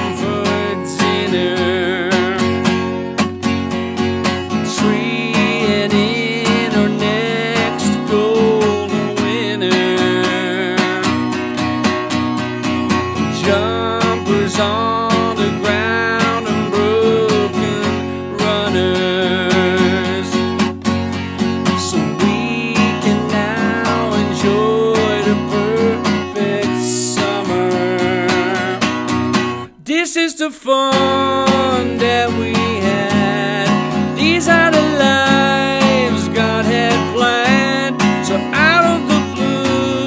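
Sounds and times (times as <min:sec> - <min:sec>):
man singing: 0:00.0 - 0:03.1, 0:04.3 - 0:11.6, 0:12.9 - 0:40.0
acoustic guitar strumming: 0:00.0 - 0:40.0.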